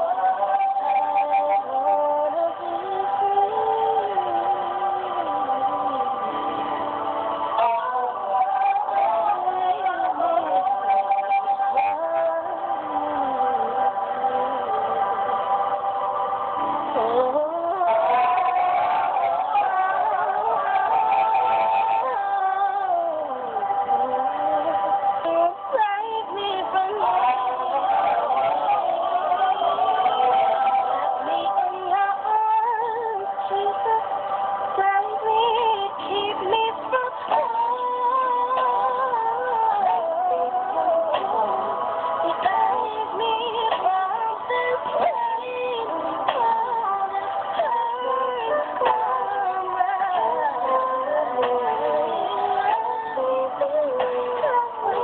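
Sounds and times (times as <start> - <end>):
song melody over held chords: 0.0 - 55.0
sustained musical backing: 0.0 - 55.0
woman singing with vibrato: 0.0 - 55.0.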